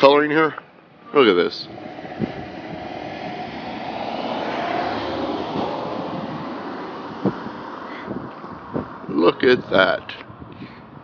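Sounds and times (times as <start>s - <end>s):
engine rushing past: 0.8s - 10.0s.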